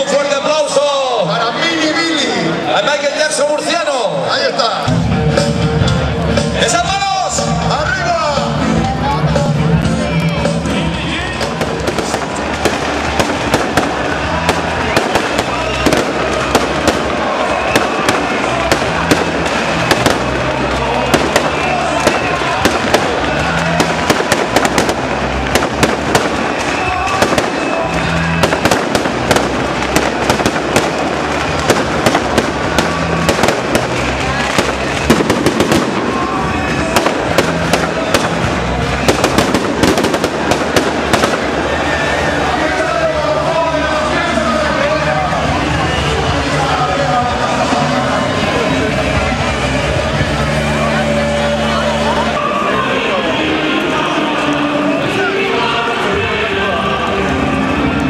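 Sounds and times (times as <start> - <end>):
crowd voices: 0.0 - 58.0
music: 0.0 - 58.0
fireworks bangs and crackles: 10.2 - 52.3.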